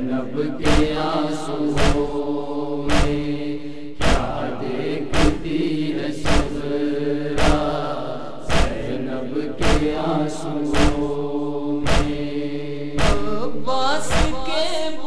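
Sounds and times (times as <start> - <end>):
crowd chanting held notes: 0.0 - 13.4
unison chest-beating strikes: 0.0 - 14.6.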